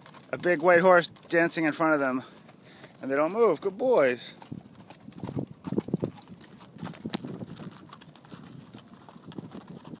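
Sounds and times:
horse hooves on packed dirt: 0.0s - 10.0s.

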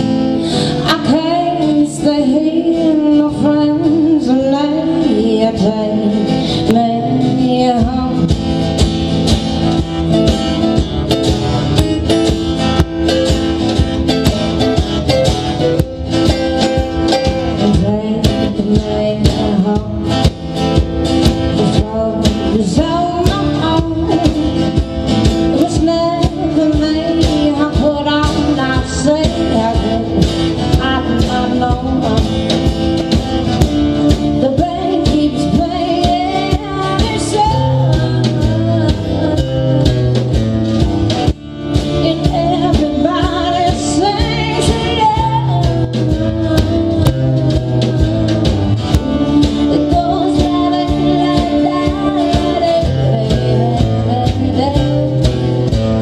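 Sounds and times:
person singing: 0.0s - 8.7s, 14.0s - 33.0s, 34.2s - 40.2s, 41.9s - 56.0s
acoustic guitars strummed: 0.0s - 56.0s
steady drum beat: 7.7s - 56.0s.

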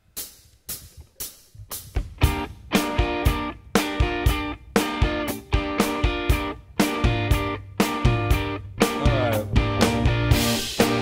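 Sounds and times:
rock band playing: 0.7s - 11.0s.

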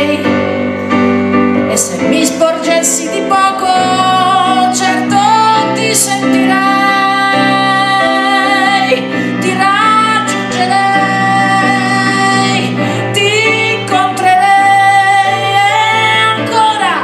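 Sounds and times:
woman singing with vibrato: 0.0s - 0.8s, 1.6s - 17.0s
electric keyboard: 0.0s - 17.0s.

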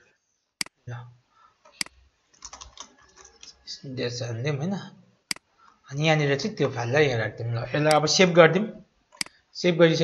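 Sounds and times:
typing on computer keyboard: 1.7s - 3.6s.

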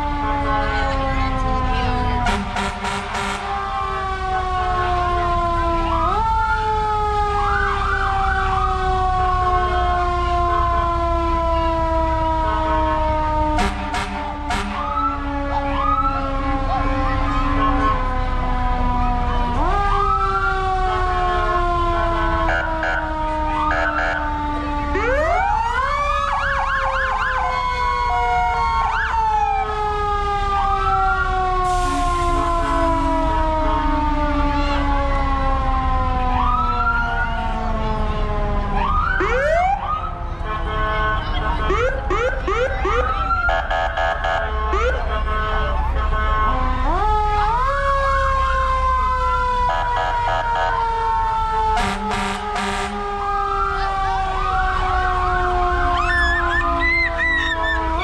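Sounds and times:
emergency vehicle sirens wailing: 0.0s - 58.0s.

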